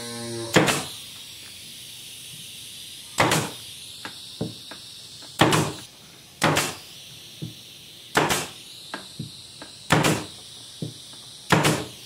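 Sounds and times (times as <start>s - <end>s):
nail gun firing: 0.5s - 1.0s, 3.2s - 3.6s, 5.4s - 5.8s, 6.4s - 6.8s, 8.1s - 8.6s, 9.9s - 10.3s, 11.5s - 12.0s.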